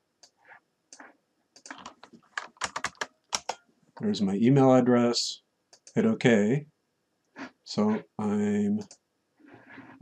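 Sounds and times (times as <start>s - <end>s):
keyboard typing: 0.9s - 3.6s.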